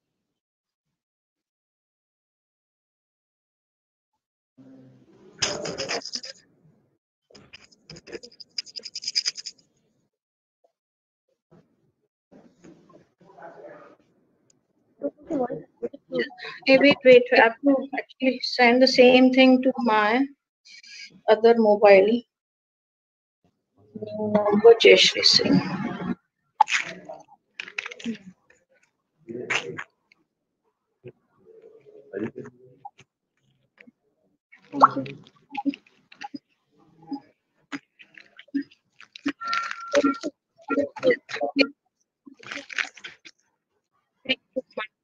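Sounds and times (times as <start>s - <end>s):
faint voice: 4.6s - 6.4s, 12.4s - 14.0s, 15.0s - 18.0s, 24.0s - 28.3s, 29.3s - 29.8s, 31.5s - 32.6s, 34.6s - 36.4s, 39.3s - 41.7s.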